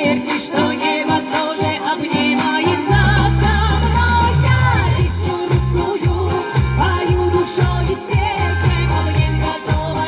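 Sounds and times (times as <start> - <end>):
pop backing track with pulsing bass: 0.0 - 10.0
woman singing into a microphone: 0.0 - 10.0.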